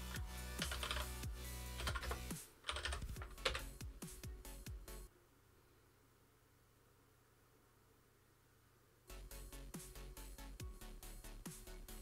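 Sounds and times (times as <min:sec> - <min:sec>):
keyboard typing: 0:00.0 - 0:03.8
electronic music with heavy bass: 0:09.1 - 0:12.0.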